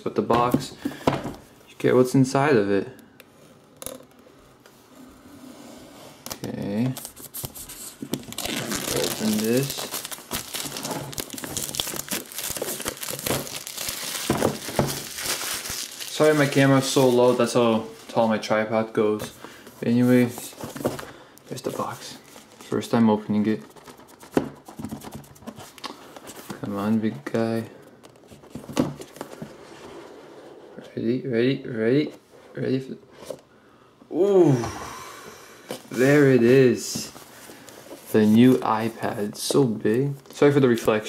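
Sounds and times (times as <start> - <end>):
plastic wrap crinkling and tearing: 8.2 - 18.1.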